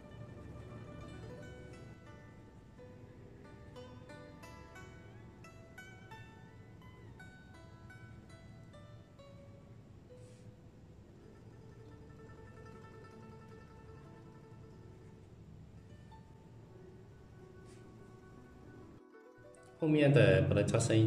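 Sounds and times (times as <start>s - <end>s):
plucked string melody: 0.0s - 21.0s.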